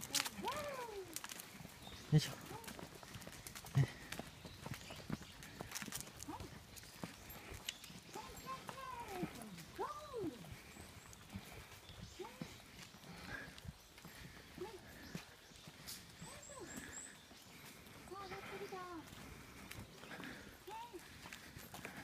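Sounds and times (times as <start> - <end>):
footsteps on concrete: 0.0 - 22.0.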